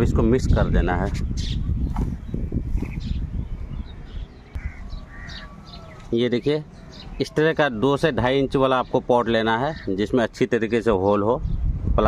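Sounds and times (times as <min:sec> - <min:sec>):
crows cawing: 0:04.5 - 0:07.2.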